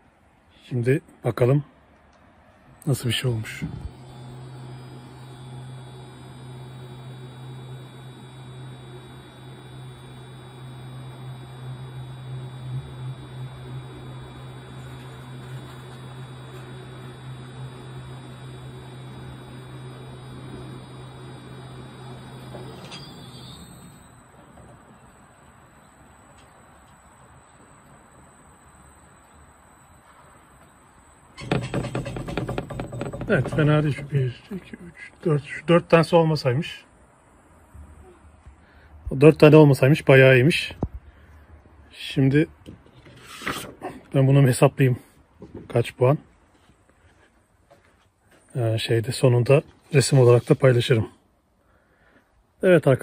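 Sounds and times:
motor hum with high whine: 2.5s - 53.0s.

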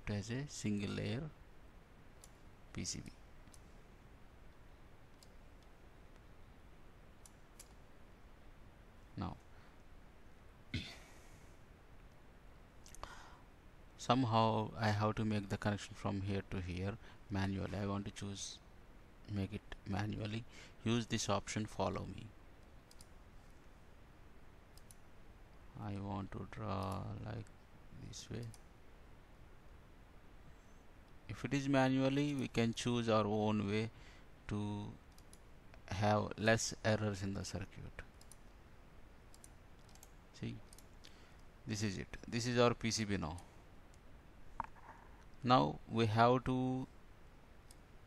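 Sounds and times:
low room hiss: 0.0s - 48.0s
faint mouse clicks: 2.2s - 2.8s, 3.4s - 3.7s, 4.5s - 6.3s, 7.2s - 7.8s, 22.6s - 23.2s, 24.7s - 25.0s, 28.4s - 28.7s, 35.1s - 35.8s, 38.0s - 38.6s, 39.3s - 41.5s.

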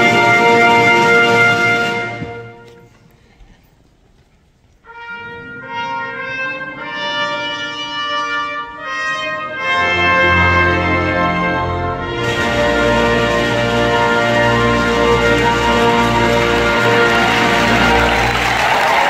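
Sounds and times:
brass held chords: 0.0s - 2.9s, 4.8s - 19.0s
full orchestra with deep bass: 0.0s - 3.1s, 4.9s - 19.0s
orchestra chord: 4.9s - 18.8s.

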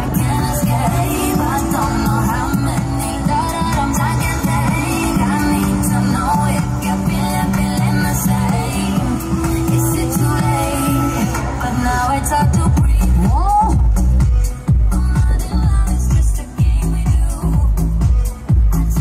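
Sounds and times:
pop dance music with singing: 0.0s - 19.0s.

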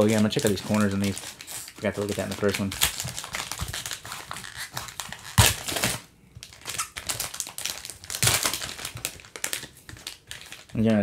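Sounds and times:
plastic wrapper tearing and crinkling: 0.0s - 11.0s.

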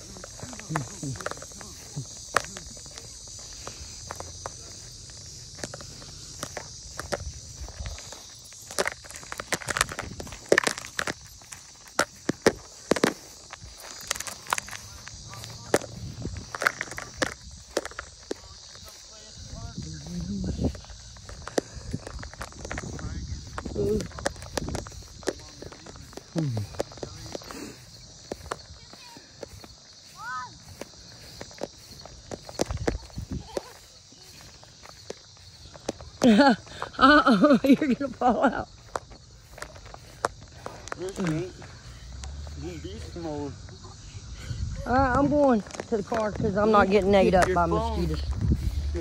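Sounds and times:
footsteps on grass: 0.0s - 49.0s
steady high-pitched hiss: 0.0s - 49.0s.

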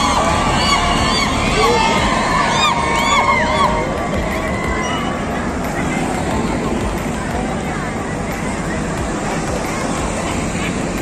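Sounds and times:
high-pitched voices whooping: 0.0s - 8.8s
crowd cheering and shouting: 0.0s - 11.0s.

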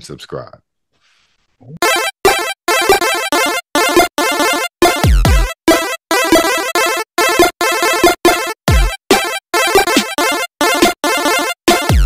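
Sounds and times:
chopped music stabs: 1.8s - 12.0s.

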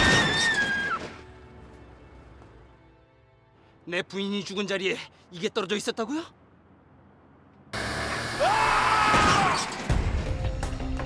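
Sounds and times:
man screaming: 8.4s - 9.7s.

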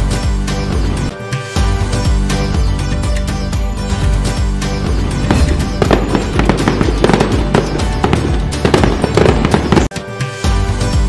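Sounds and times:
festive background music: 0.0s - 11.0s
fireworks crackling bangs: 5.2s - 9.9s.

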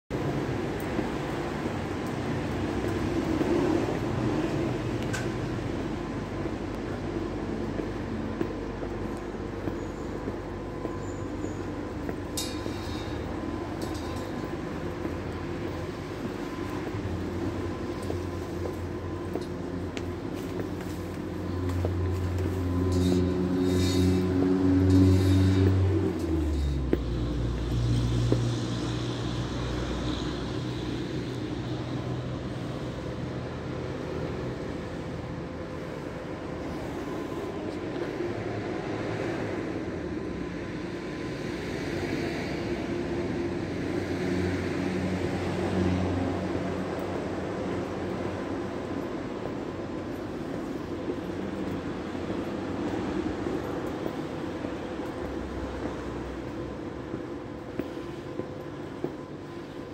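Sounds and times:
city traffic rumble: 0.1s - 59.9s
low engine hum: 0.1s - 59.9s
footsteps on concrete steps: 0.7s - 23.4s, 24.8s - 28.9s, 49.0s - 59.9s.

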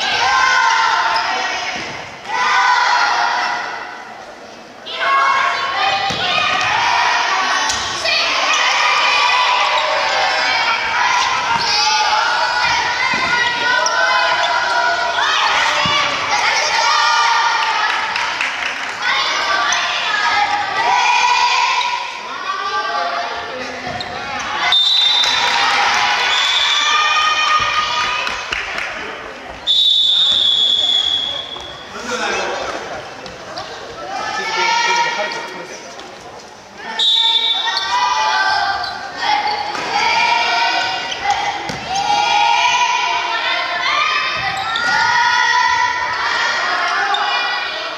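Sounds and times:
children shouting: 0.0s - 4.1s, 4.8s - 28.7s, 36.8s - 47.9s
shrill whistle blast: 24.6s - 25.5s, 26.3s - 27.0s, 29.7s - 31.8s, 37.0s - 37.8s.

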